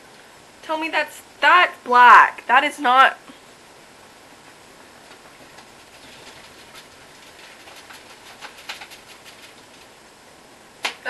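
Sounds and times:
paintbrush strokes on canvas: 0:05.6 - 0:10.0.

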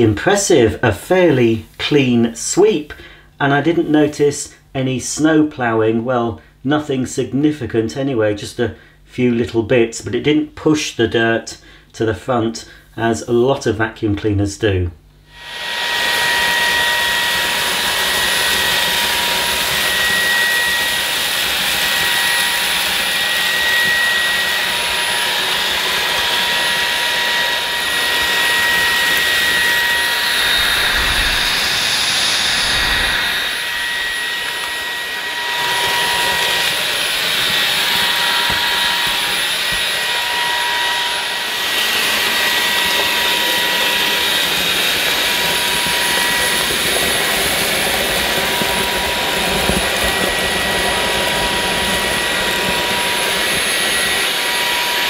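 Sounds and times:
stick vacuum whining: 0:15.3 - 0:55.0.

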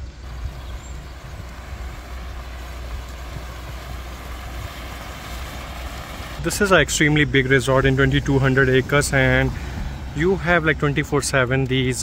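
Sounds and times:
fountain water splashing: 0:00.0 - 0:12.0
steady low rumble: 0:00.0 - 0:12.0.

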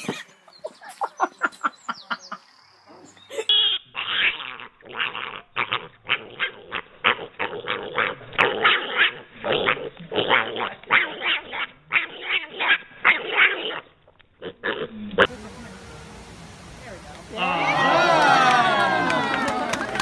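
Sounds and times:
dog barking rapidly: 0:04.0 - 0:09.3, 0:10.3 - 0:13.9.

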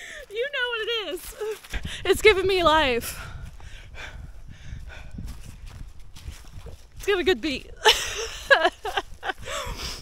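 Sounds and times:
footsteps on rocky trail: 0:00.0 - 0:09.7
wind rumble on microphone: 0:01.2 - 0:10.0.

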